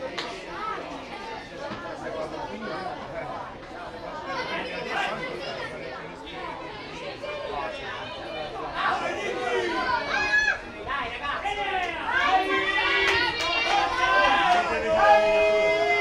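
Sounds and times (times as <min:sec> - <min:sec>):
crowd chattering and calling out: 0:00.0 - 0:16.0
people shouting: 0:08.8 - 0:16.0.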